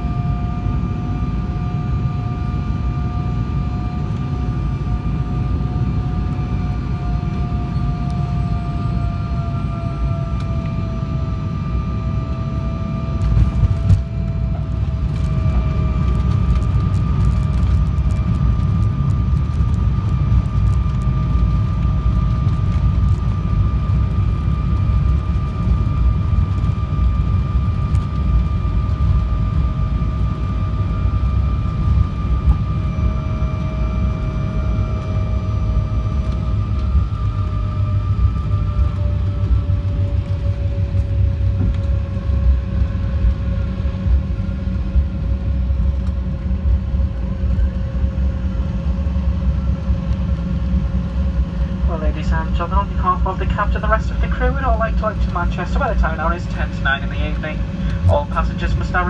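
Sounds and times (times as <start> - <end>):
jet engines whining: 0.0 - 59.0
wheels and airframe rumble: 0.0 - 59.0.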